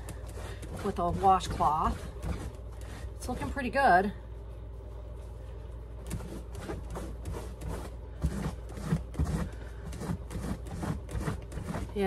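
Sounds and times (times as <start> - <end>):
wet cloth scrubbing leather: 0.0 - 2.9
low background hum: 0.0 - 12.0.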